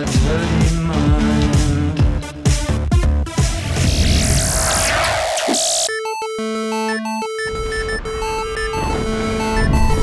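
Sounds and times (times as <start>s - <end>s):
electronic synthesizer jingle: 5.8s - 10.0s.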